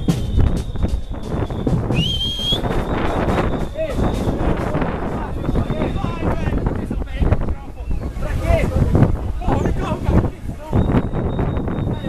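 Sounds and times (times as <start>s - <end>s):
short high whistle: 0.0s - 4.6s
marching street crowd noise: 0.0s - 12.0s.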